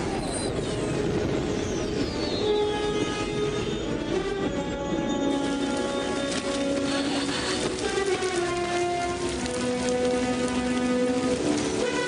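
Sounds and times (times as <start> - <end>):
heavy rain: 0.0 - 12.0
orchestral score held notes: 0.5 - 12.0.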